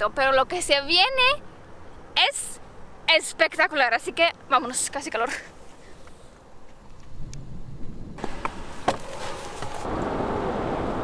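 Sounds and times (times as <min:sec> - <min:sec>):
car road noise: 0:08.1 - 0:11.0.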